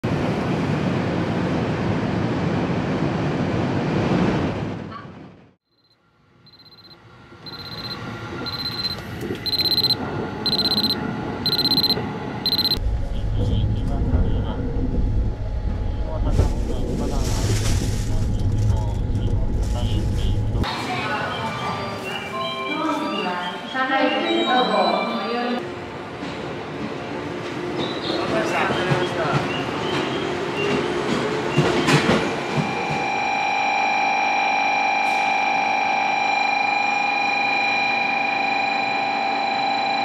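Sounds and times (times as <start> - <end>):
alarm clock beeping: 6.5 - 12.8
train carriage running noise: 6.5 - 36.2
low rumble of sleeper train: 7.1 - 20.7.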